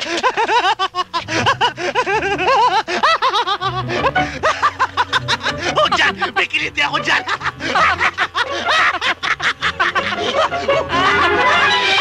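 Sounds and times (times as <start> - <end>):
man laughing hard: 0.0 - 12.0
background music: 0.4 - 12.0.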